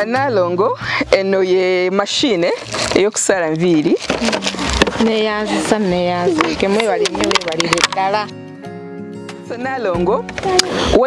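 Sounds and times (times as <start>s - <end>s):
box clicking and rustling: 2.6s - 5.2s, 6.4s - 8.2s.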